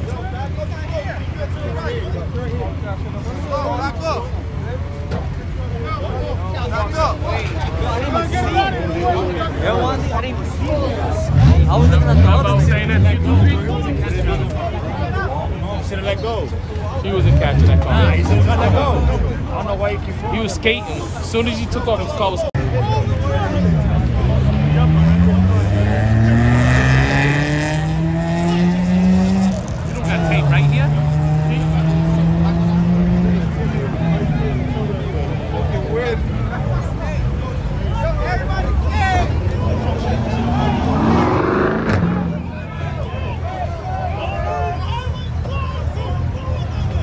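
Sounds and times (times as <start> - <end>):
crowd talking: 0.0 - 47.0
car engine at high revs: 11.1 - 14.5, 17.0 - 19.4, 23.3 - 36.1, 39.0 - 42.8.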